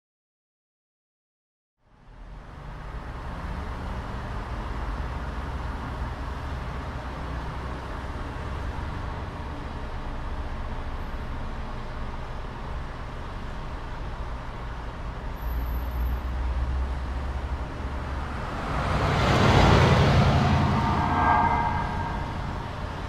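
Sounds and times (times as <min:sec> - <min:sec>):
low steady rumble: 0:16.4 - 0:23.0
vehicle passing close by: 0:16.6 - 0:23.0.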